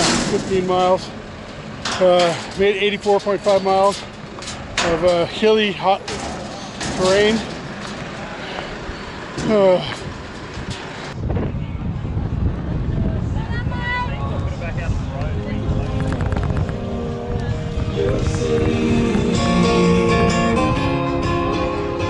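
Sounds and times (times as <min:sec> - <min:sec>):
voices: 0:00.0 - 0:20.2
rumbling outdoor noise: 0:00.0 - 0:22.0
acoustic guitar music: 0:16.0 - 0:22.0.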